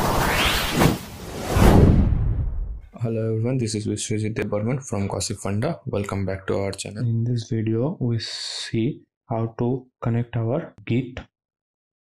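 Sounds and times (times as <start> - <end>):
deep whoosh: 0.0 - 2.9.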